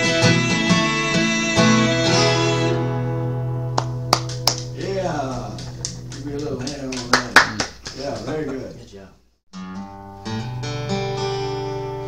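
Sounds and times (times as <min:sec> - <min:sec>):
acoustic guitar chord strummed: 0:00.0 - 0:06.2, 0:09.5 - 0:12.0
guitar clicks and string sounds: 0:03.7 - 0:06.6
person speaking: 0:04.8 - 0:09.2.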